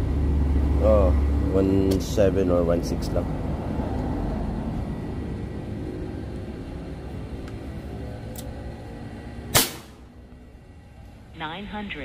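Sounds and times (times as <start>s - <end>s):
low background rumble: 0.0s - 12.0s
air rifle shot: 9.5s - 10.1s.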